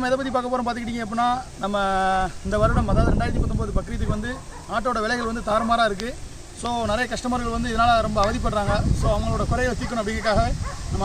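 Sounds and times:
man speaking: 0:00.0 - 0:11.0
wind rumble on microphone: 0:01.9 - 0:11.0.

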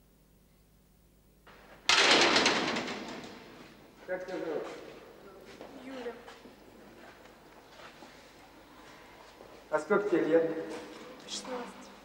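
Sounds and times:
heavy door slamming: 0:01.6 - 0:03.7.

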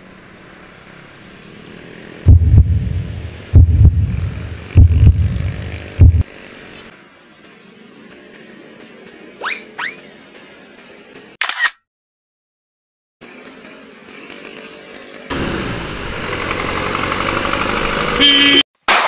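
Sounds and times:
motorcycle engine and traffic noise: 0:00.0 - 0:09.3, 0:13.3 - 0:18.6
loud steady tone: 0:02.3 - 0:06.2, 0:18.2 - 0:18.6.

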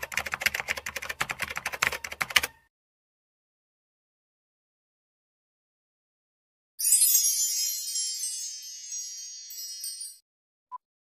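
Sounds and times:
shimmering chime: 0:06.8 - 0:10.2.

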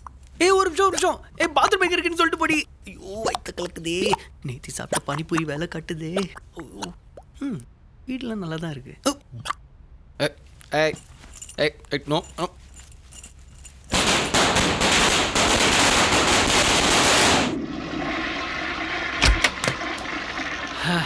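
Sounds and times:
toilet flushing: 0:17.4 - 0:21.0
cistern refilling trickle: 0:17.6 - 0:21.0.

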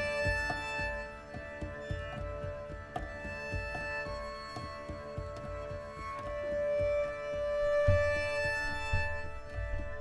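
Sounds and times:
layered bowed cello: 0:00.0 - 0:10.0.

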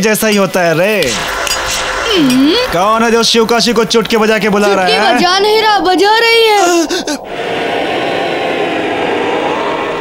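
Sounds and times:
welding torch flame hissing: 0:00.1 - 0:05.4.

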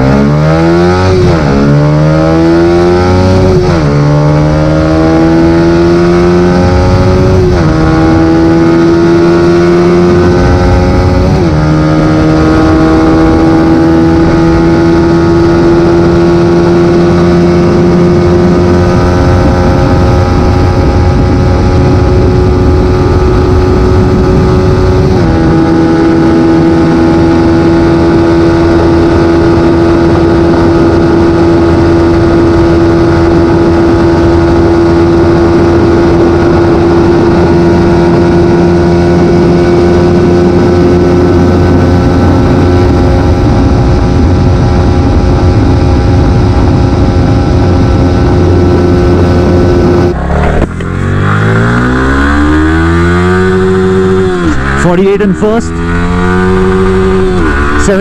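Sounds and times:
motorcycle accelerating hard: 0:00.0 - 0:58.0
motorcycle engine droning at high revs: 0:00.0 - 0:58.0.

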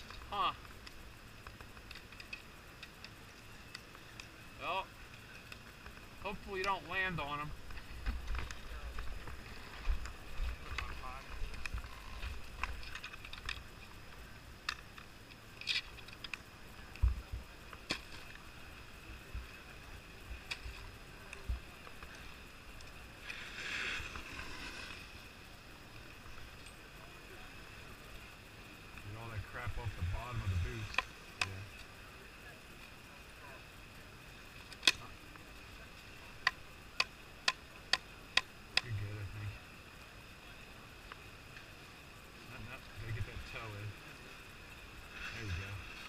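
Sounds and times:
faint voices: 0:02.5 - 0:46.0
ski scraping on snow: 0:23.2 - 0:25.4.

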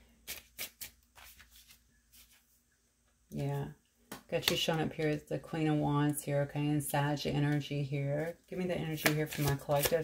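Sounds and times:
cards clicking and tapping: 0:08.9 - 0:10.0.

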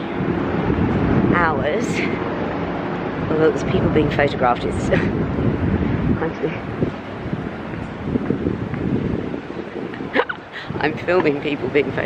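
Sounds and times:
wind buffeting microphone: 0:00.0 - 0:12.0
person speaking: 0:10.2 - 0:12.0.

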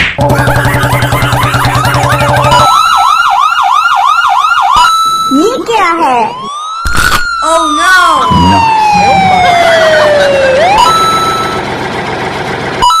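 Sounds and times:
ambulance siren wailing: 0:00.2 - 0:11.8, 0:12.8 - 0:13.0
short voice-like sounds: 0:08.3 - 0:08.8.

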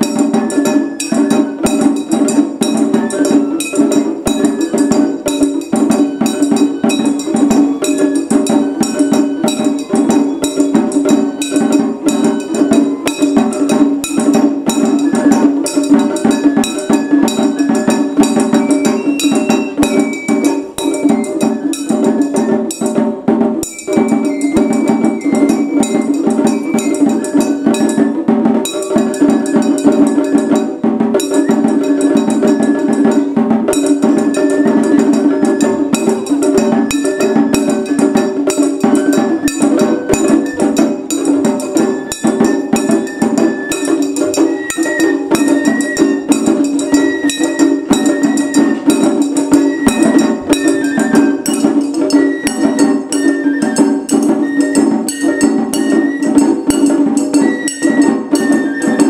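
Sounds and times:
bamboo flute melody: 0:00.0 - 0:59.0
large drum: 0:00.0 - 0:59.0
small drums rapid strokes: 0:00.0 - 0:59.0.

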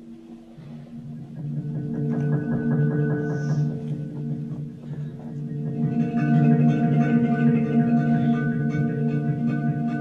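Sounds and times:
handpan notes ringing: 0:00.0 - 0:10.0.

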